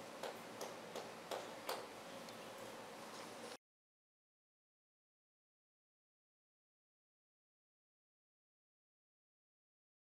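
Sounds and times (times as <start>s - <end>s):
low room hum: 0.0s - 3.6s.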